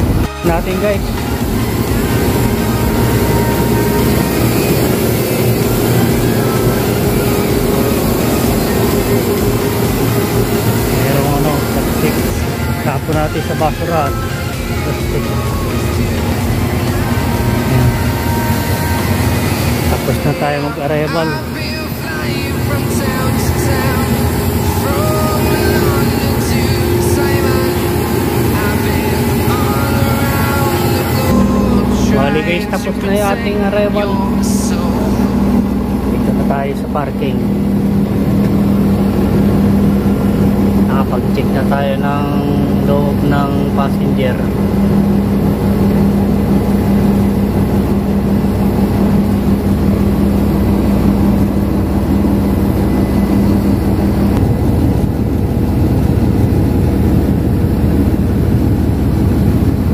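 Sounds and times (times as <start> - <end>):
bus engine hum: 0.0 - 59.9.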